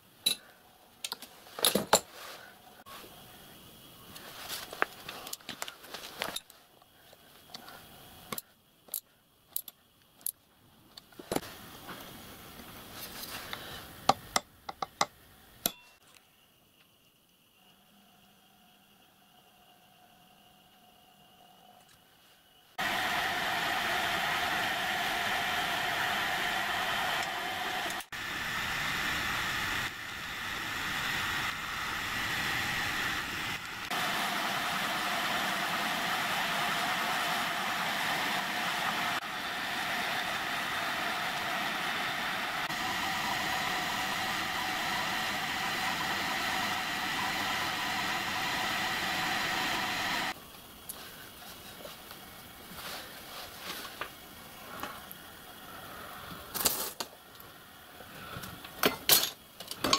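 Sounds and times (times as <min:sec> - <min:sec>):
pillar drill whining: 0:22.8 - 0:50.4.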